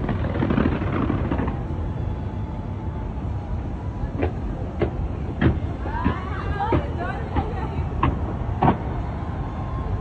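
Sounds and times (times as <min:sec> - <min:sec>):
fireworks bangs: 0:00.0 - 0:03.2, 0:03.8 - 0:10.0
distant fireworks rumble: 0:00.0 - 0:10.0.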